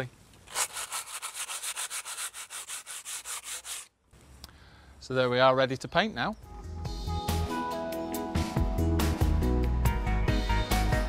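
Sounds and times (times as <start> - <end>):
sanding filler in masonry: 0.5 - 3.9.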